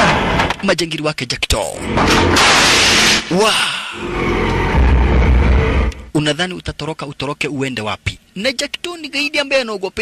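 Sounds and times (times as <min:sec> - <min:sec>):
action film music and effects: 0:00.0 - 0:00.7, 0:01.7 - 0:06.2
deep rumble: 0:03.9 - 0:06.1.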